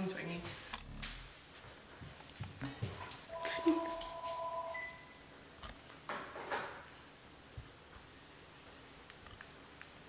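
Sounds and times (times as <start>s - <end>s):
phone ringtone chiming: 3.3s - 5.2s.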